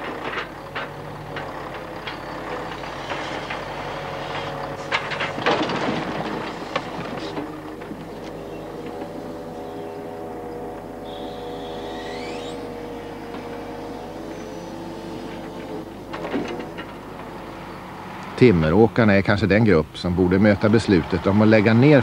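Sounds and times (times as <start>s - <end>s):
crane knocks: 0.0s - 19.0s
hydraulic pump engine drone: 0.0s - 22.0s
rising whine: 8.1s - 16.4s.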